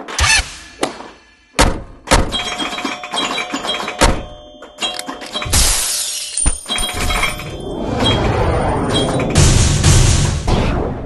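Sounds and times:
sharp hits: 0:06.6 - 0:11.0.

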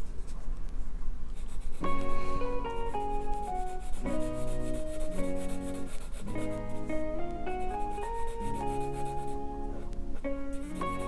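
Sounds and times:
marker rubbing on paper: 0:01.3 - 0:01.9, 0:03.2 - 0:06.9, 0:07.8 - 0:09.4
gentle instrumental music: 0:01.4 - 0:11.0.

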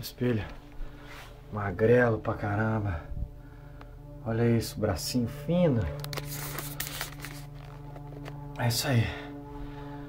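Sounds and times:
steady low hum: 0:00.0 - 0:10.0
phone handling rustling: 0:05.9 - 0:08.6.

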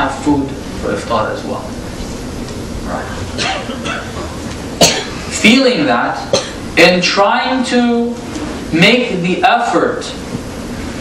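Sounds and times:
person coughing: 0:03.4 - 0:05.3, 0:06.3 - 0:06.6.

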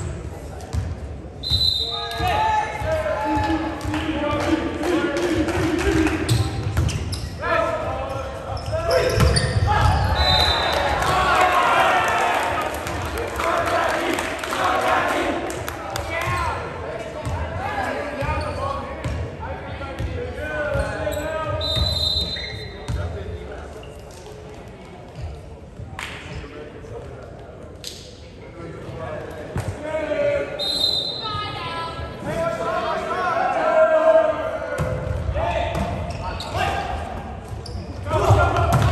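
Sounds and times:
sneakers squeaking on floor: 0:06.2 - 0:07.5, 0:08.4 - 0:10.7, 0:18.2 - 0:19.2, 0:20.0 - 0:23.2, 0:25.1 - 0:25.6, 0:35.8 - 0:36.8, 0:37.4 - 0:38.9
players shouting calls: 0:07.4 - 0:16.8, 0:29.7 - 0:37.2, 0:37.8 - 0:38.9.

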